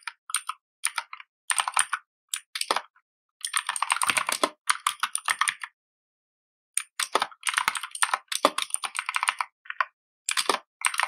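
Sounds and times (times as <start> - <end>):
typing on computer keyboard: 0.0 - 5.8, 6.8 - 11.0.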